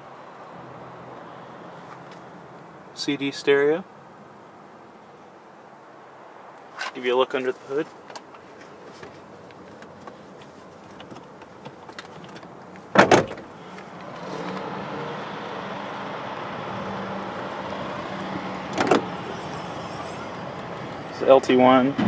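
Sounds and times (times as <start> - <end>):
car body clunks: 10.9 - 13.5, 18.7 - 19.1.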